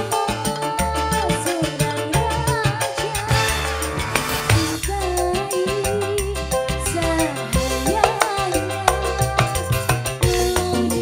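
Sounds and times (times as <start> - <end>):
percussion beat: 0.0 - 5.6, 7.3 - 11.0.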